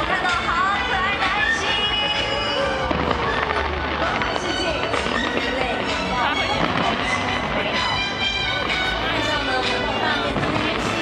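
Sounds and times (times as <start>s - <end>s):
fireworks crackling and popping: 0.0s - 11.0s.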